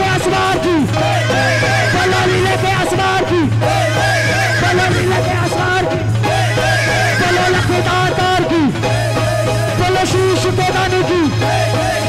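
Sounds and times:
devotional music: 0:00.0 - 0:12.0
wavering pitched voices: 0:01.0 - 0:09.5.

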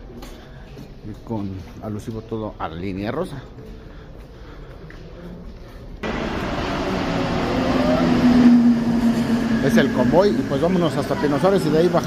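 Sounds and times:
rising whine: 0:06.0 - 0:12.0
steady hum: 0:06.0 - 0:12.0
train running noise: 0:06.0 - 0:12.0.

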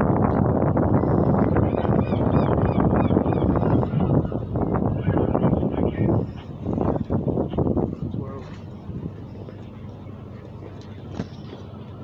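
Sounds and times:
low engine-like rumble: 0:00.0 - 0:12.0.

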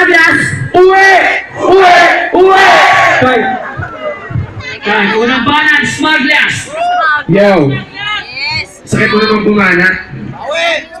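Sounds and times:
crowd noise: 0:00.0 - 0:11.0
loud drawn-out shouts: 0:00.1 - 0:05.5.

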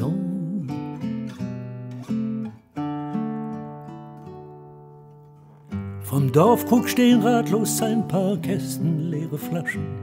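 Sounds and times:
person singing: 0:00.0 - 0:01.0, 0:06.0 - 0:10.0
acoustic guitar strumming: 0:00.0 - 0:10.0.

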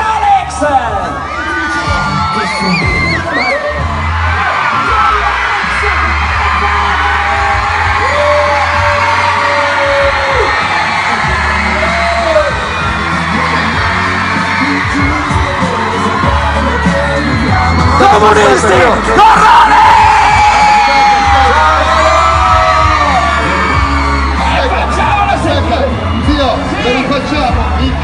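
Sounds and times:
crowd shouting and cheering: 0:00.0 - 0:28.0
pop-rap music with deep bass: 0:00.0 - 0:28.0.

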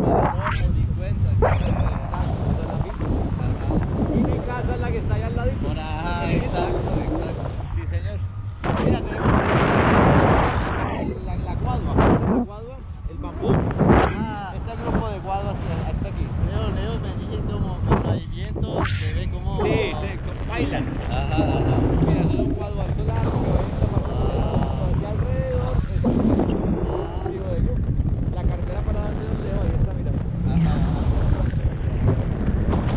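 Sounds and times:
wind buffeting microphone: 0:00.0 - 0:32.9
person's voice: 0:13.2 - 0:31.6.

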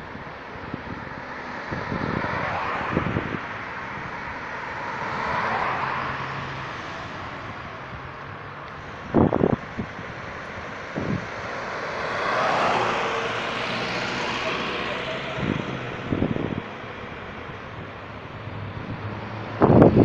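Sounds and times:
cars passing on road: 0:00.0 - 0:20.0.

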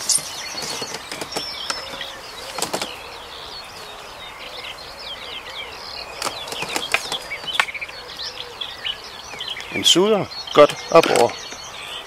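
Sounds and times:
birds singing and chirping: 0:00.0 - 0:12.0.

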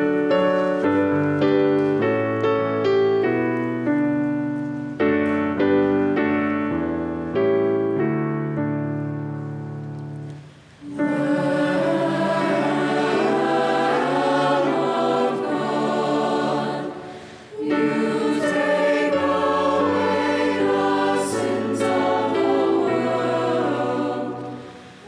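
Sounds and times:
choir singing church music: 0:00.0 - 0:25.0.

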